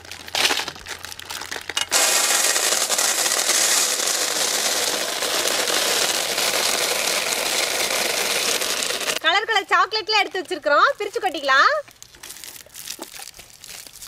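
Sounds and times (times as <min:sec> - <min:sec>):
plastic wrappers crinkling: 0:00.0 - 0:09.2, 0:10.3 - 0:14.0
sweets pouring from a steel bowl: 0:00.0 - 0:09.2.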